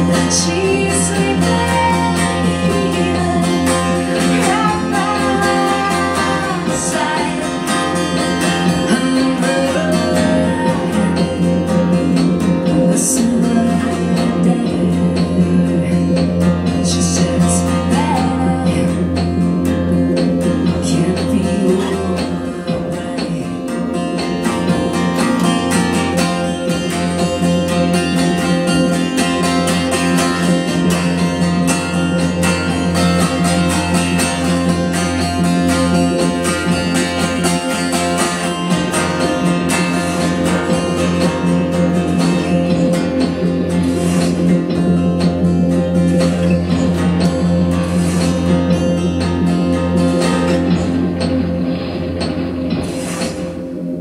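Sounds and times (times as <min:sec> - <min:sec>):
acoustic guitar strumming: 0:00.0 - 0:54.0
sustained low drone: 0:00.0 - 0:54.0.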